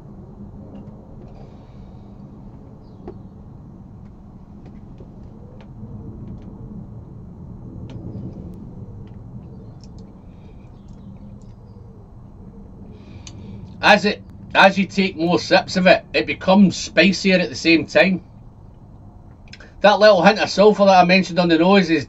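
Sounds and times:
low steady hum: 0.0s - 22.0s.

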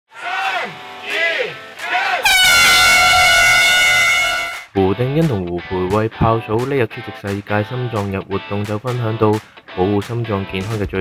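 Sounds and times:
people shouting calls: 0.1s - 4.6s
air horn blast: 2.2s - 4.7s.

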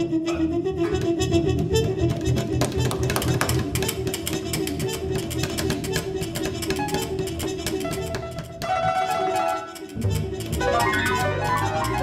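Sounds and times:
live jazz trio: 0.0s - 12.0s
rapid plucked-string notes: 0.8s - 12.0s.

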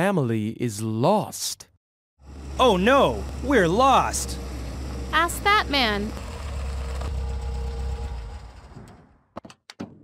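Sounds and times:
car engine idling: 2.3s - 8.7s.

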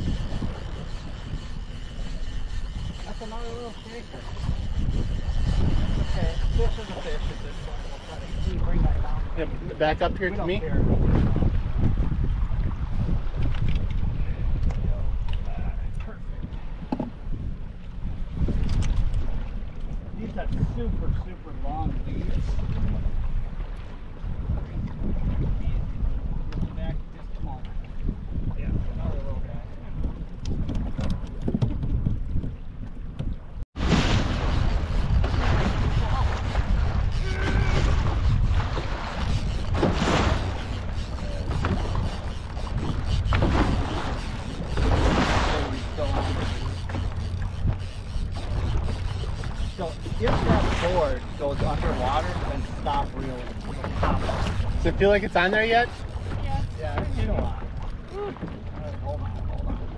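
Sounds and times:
small boat moving through waves: 0.0s - 59.9s
wind on microphone: 0.0s - 59.9s.

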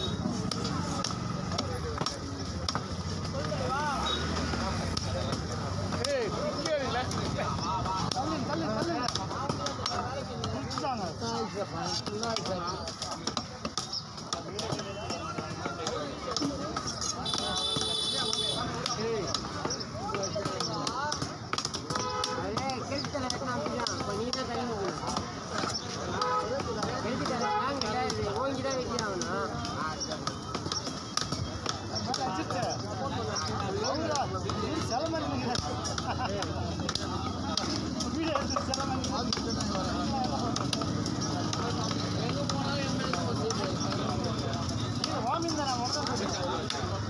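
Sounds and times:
people talking: 0.0s - 47.0s
voices chattering: 0.0s - 47.0s.

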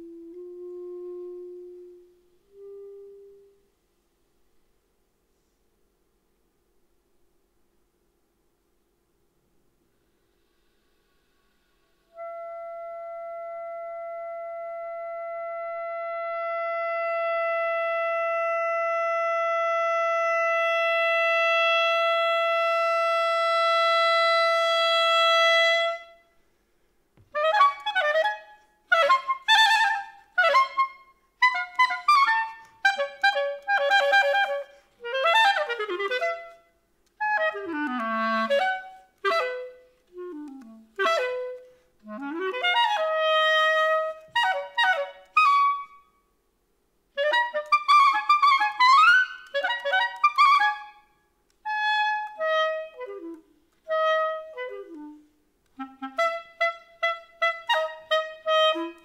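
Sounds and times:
clarinet long note: 0.0s - 3.7s, 11.0s - 26.3s, 27.3s - 46.1s, 47.2s - 59.0s.

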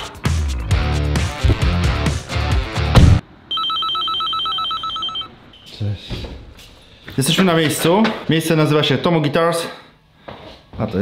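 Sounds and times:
rock music with guitars: 0.0s - 3.2s
electronic ringer trilling: 3.5s - 5.3s.

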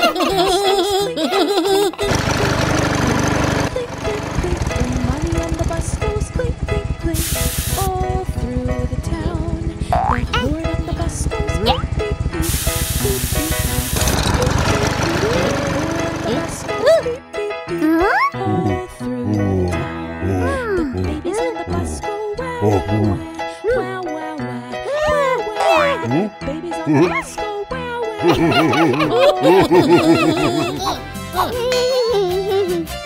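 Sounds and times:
engine-like rattle: 2.1s - 7.2s, 7.8s - 12.4s, 13.9s - 17.0s
cartoon music: 6.4s - 17.2s, 25.0s - 27.5s
short bursts of hiss: 7.2s - 7.9s, 12.4s - 14.8s.

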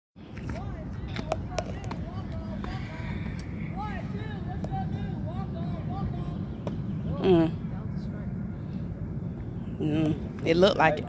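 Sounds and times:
distant voices calling out: 0.2s - 11.0s
low rumble: 0.8s - 11.0s.

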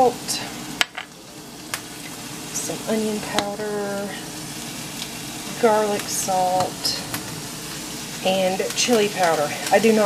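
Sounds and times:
meat sizzling in a pan: 0.0s - 10.0s.

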